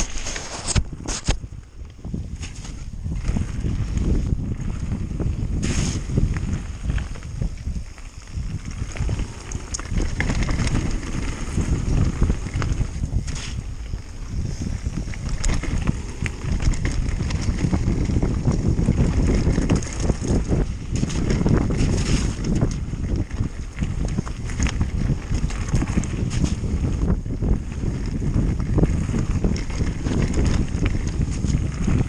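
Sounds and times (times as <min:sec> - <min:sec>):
bike tyres crunching on gravel: 0:00.0 - 0:32.0
stones and bike rattling: 0:00.0 - 0:32.0
wind buffeting microphone: 0:00.0 - 0:32.0
brief hissing spurts: 0:05.6 - 0:06.1.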